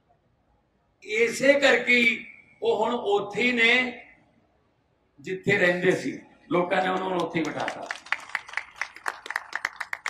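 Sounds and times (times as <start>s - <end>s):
people clapping: 6.8s - 10.0s.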